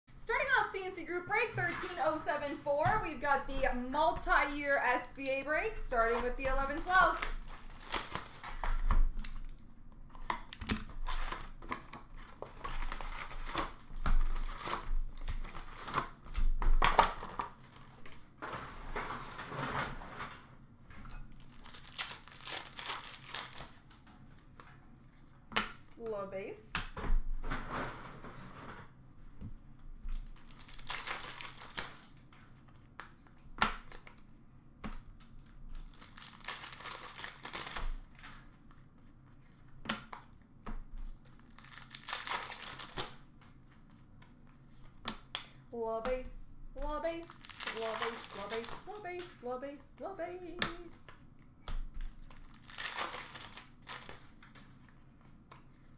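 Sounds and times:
wrappers tearing and crinkling: 0:05.9 - 0:09.6, 0:10.6 - 0:16.3, 0:21.3 - 0:24.0, 0:30.1 - 0:32.2, 0:35.1 - 0:38.4, 0:41.0 - 0:43.3, 0:47.1 - 0:49.2, 0:52.0 - 0:55.0.

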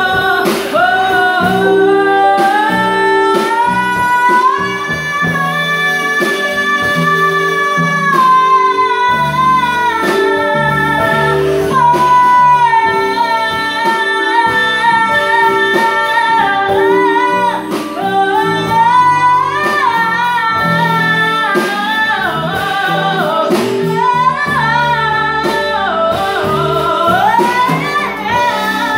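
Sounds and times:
live band with keyboard and drums: 0:00.0 - 0:28.9
woman singing: 0:00.0 - 0:28.9.

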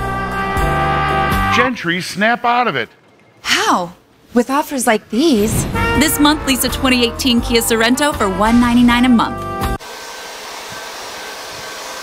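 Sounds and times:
steady rushing air: 0:05.2 - 0:07.6.

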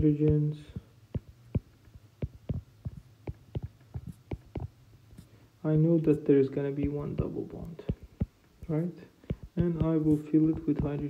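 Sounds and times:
stylus tapping tablet screen: 0:00.0 - 0:05.3, 0:06.0 - 0:11.0
faint low hum: 0:00.0 - 0:11.0.

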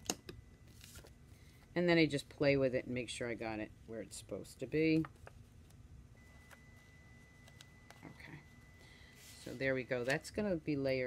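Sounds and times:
faint high whine: 0:06.1 - 0:11.0.

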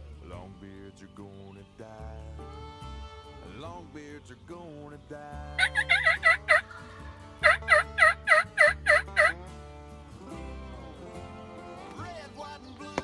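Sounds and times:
wild turkey yelping: 0:05.5 - 0:09.4.

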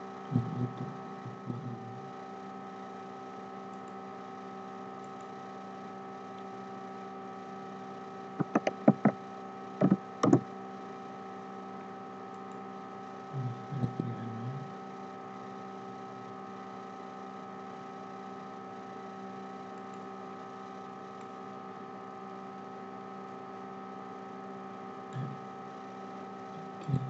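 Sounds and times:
electrical hum: 0:00.0 - 0:27.0
soft low bumps: 0:08.4 - 0:09.2.

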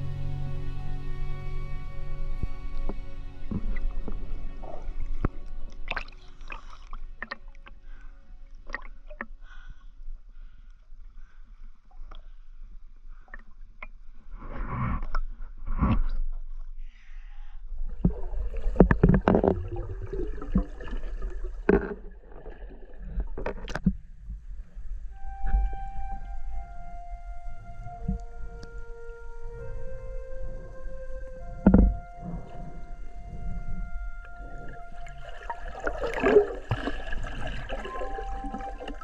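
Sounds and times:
low underwater rumble: 0:00.0 - 0:09.7, 0:17.8 - 0:39.0
water lapping: 0:02.2 - 0:11.5, 0:17.8 - 0:39.0
splashy water gushes: 0:18.0 - 0:23.5, 0:34.7 - 0:39.0
short splashes: 0:34.2 - 0:39.0.

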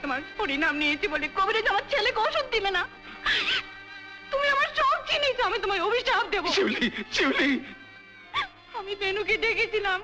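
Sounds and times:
woman weeping: 0:03.2 - 0:03.7, 0:08.3 - 0:08.6.

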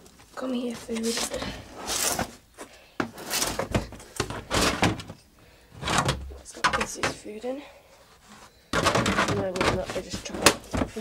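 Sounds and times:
rummaging in metal feed bin: 0:03.1 - 0:05.2, 0:08.8 - 0:11.0.

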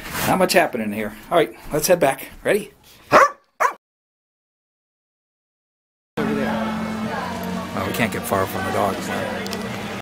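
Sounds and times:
dog barking: 0:03.1 - 0:03.8.

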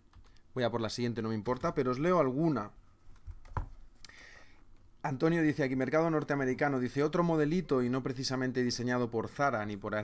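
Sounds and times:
faint computer keyboard keystrokes: 0:00.1 - 0:00.5, 0:03.1 - 0:03.7.

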